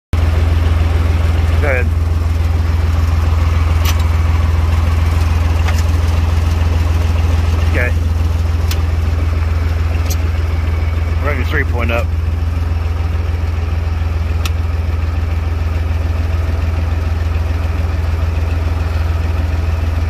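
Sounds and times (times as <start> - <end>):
diesel tractor engine idling: 0.2 - 20.0.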